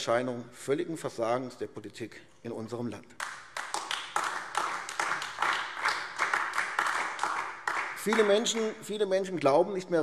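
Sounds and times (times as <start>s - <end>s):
people clapping: 3.1s - 9.6s.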